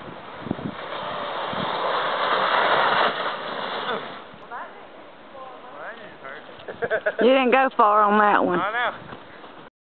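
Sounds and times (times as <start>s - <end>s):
sled hissing on snow: 0.0s - 4.4s.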